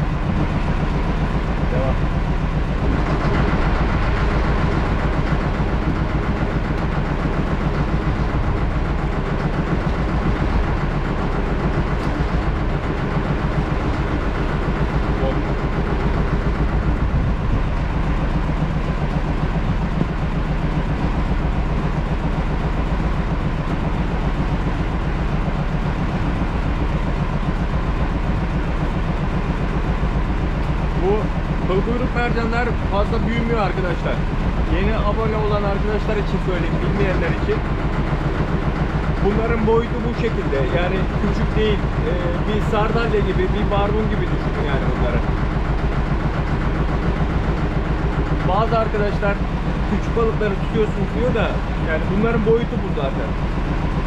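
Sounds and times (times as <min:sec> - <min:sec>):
boat engine running low rumble: 0:00.0 - 0:54.0.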